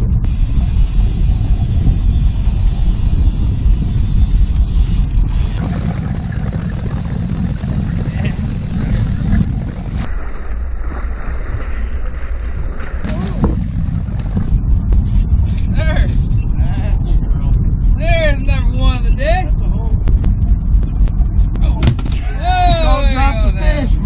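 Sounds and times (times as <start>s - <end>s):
boat engine rumble: 0.0s - 24.0s
wind on microphone: 0.0s - 24.0s
rushing water: 5.3s - 10.8s.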